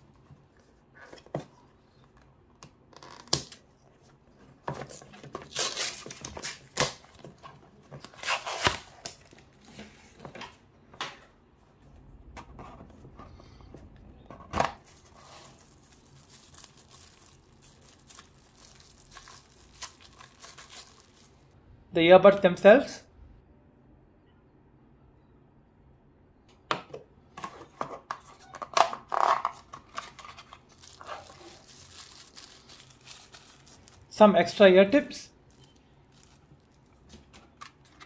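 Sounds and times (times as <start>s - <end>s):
cardboard packaging rustling and tearing: 3.0s - 10.4s, 14.6s - 21.5s, 28.7s - 34.1s, 35.5s - 38.0s.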